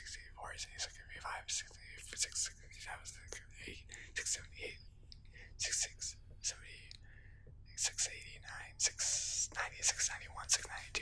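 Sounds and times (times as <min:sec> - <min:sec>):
man whispering: 0:00.0 - 0:11.0.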